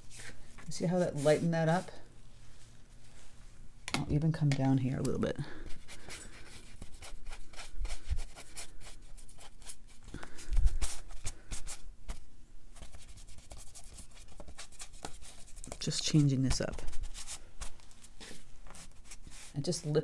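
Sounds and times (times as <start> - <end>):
brush scrubbing paper: 5.7 - 12.2, 12.8 - 17.8, 18.6 - 20.0.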